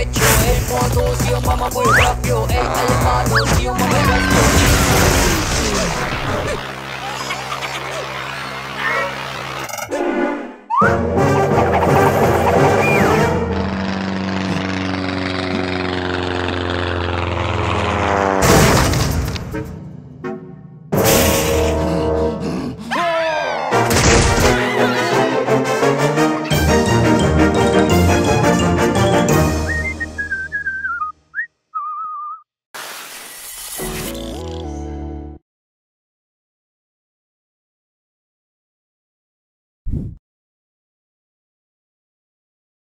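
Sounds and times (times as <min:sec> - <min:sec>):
background music: 0:00.0 - 0:04.5, 0:19.5 - 0:30.6
cartoon whistle effects: 0:01.8 - 0:02.2, 0:10.7 - 0:11.1, 0:12.8 - 0:13.2, 0:29.6 - 0:32.4
propeller plane engine drone: 0:06.0 - 0:10.4, 0:11.0 - 0:22.9
sharp hit: 0:20.9 - 0:21.8
jingle music: 0:25.2 - 0:29.6.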